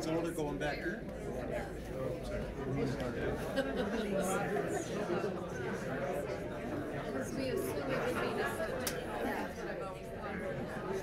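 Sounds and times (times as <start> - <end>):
hubbub of overlapping conversation: 0.0 - 11.0.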